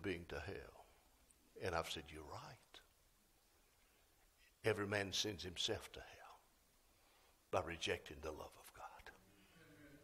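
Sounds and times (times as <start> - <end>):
man speaking: 0.0 - 2.9, 4.5 - 6.5, 7.5 - 9.2.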